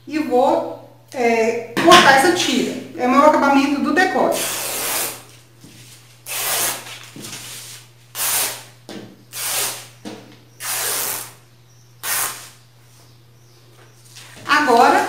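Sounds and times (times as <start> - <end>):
fabric ripping: 4.4 - 5.3, 6.3 - 7.0, 9.4 - 9.9, 10.6 - 11.4, 12.0 - 12.6.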